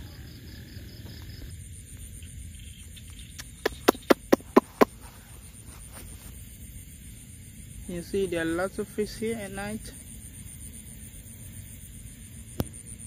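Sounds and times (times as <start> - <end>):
night insects chirping: 0.0 - 13.0
sharp animal calls: 2.9 - 5.2.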